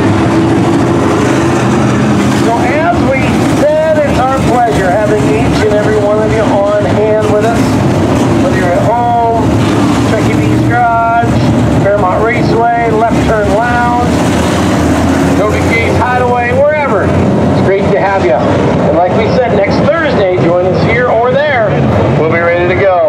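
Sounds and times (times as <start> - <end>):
race car engines droning: 0.0 - 23.0.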